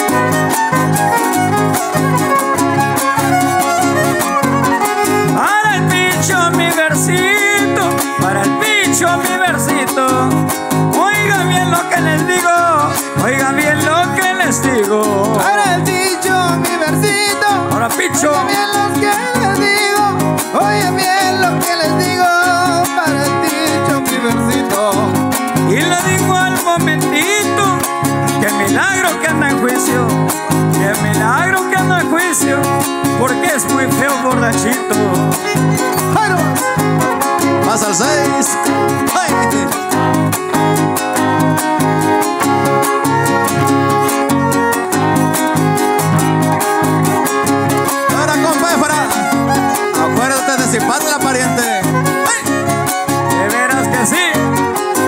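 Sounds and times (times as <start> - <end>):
strummed guitars: 0.0 - 55.0
violin melody with sliding notes: 0.0 - 55.0.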